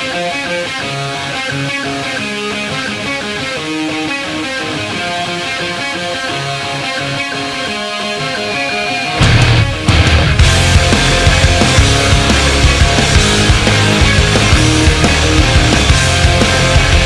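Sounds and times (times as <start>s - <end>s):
picked guitar notes: 0.0s - 17.0s.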